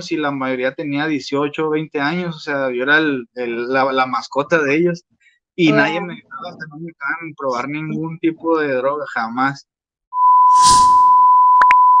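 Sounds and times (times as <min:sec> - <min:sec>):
test-tone beep: 0:10.2 - 0:12.0.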